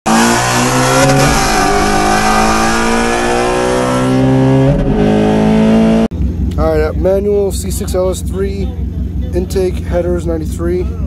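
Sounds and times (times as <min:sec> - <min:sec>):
car engines at full throttle: 0:00.1 - 0:11.0.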